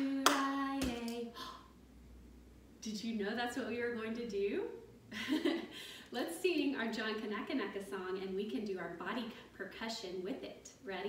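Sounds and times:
sharp hand clap: 0.0 - 1.2.

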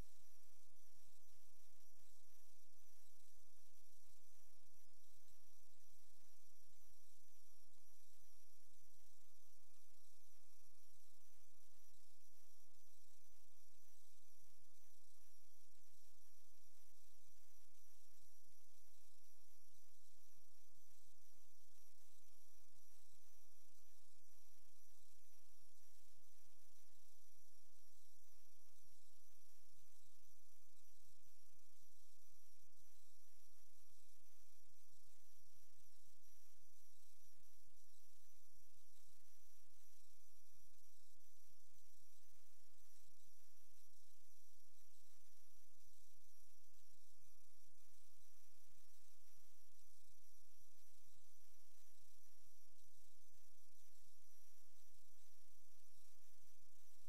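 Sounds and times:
faint high-pitched whine: 0.0 - 57.0.

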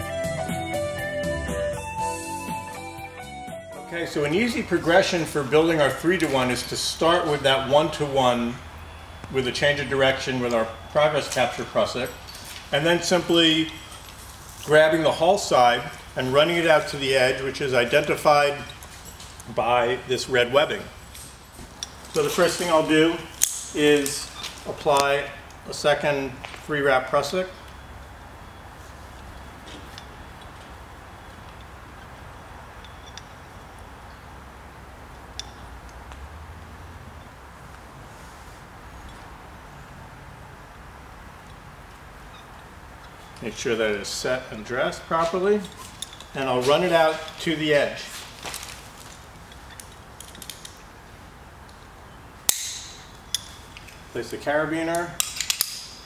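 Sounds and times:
cord clicks and rustles: 45.2 - 51.0
sharp metallic carabiner click: 52.5 - 53.6, 54.9 - 56.0.

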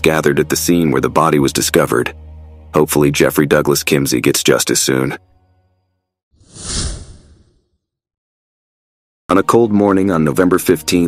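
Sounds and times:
whoosh transition: 6.4 - 7.7.

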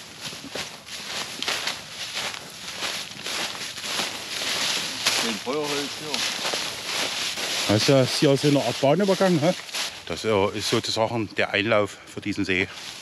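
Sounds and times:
footsteps through fallen leaves: 0.0 - 11.0, 12.6 - 13.0.

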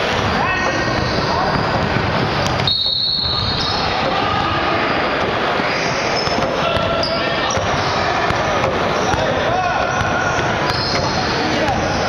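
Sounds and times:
steady gym din: 0.0 - 12.0
basketball bouncing: 0.1 - 5.5, 6.1 - 12.0
sneaker squeaks on hardwood: 0.5 - 12.0.

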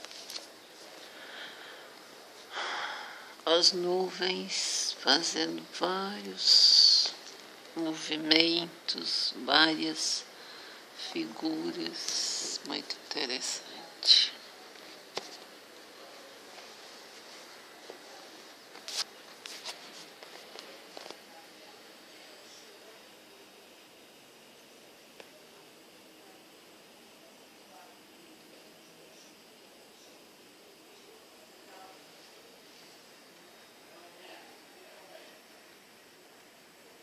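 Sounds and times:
faint outdoor background noise: 0.0 - 37.0
faint steady hiss: 0.0 - 37.0.

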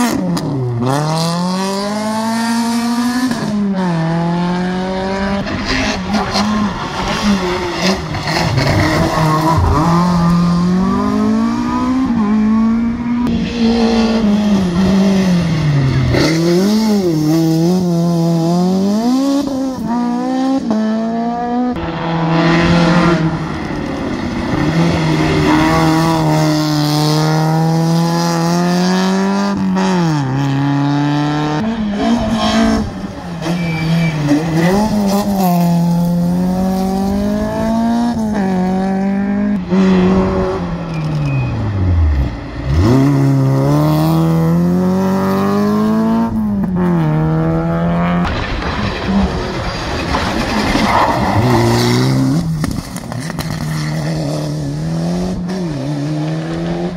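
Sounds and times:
rally car engines revving: 0.0 - 56.9.

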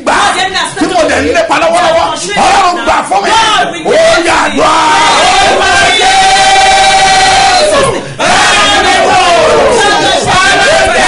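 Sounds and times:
voices crying out together: 1.7 - 11.0.

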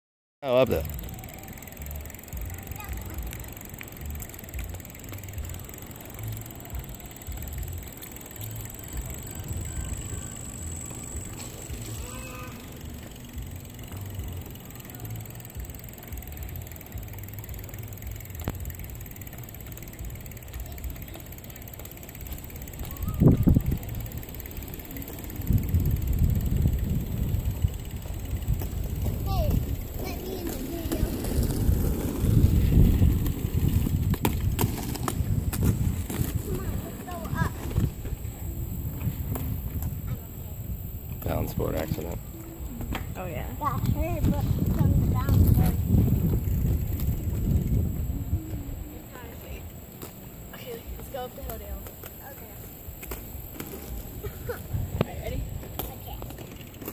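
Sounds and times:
small wheels rolling on pavement: 0.4 - 56.9
faint children's voices: 1.0 - 33.9, 35.7 - 41.4, 42.0 - 52.8, 53.5 - 56.9
wind rumble: 15.0 - 56.9.

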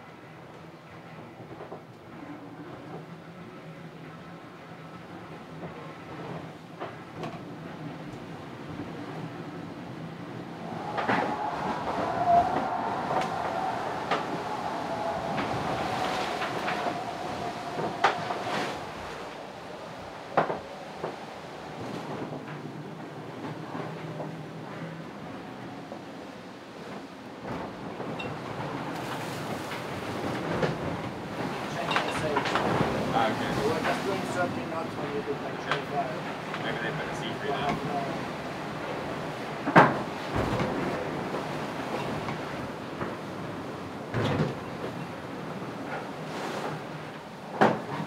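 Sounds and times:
hull rumbling through sea: 0.0 - 48.0.

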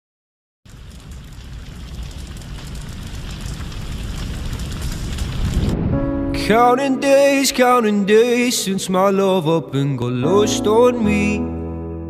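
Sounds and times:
crackling rain-like noise: 0.7 - 9.2
low rumble: 1.4 - 7.3.

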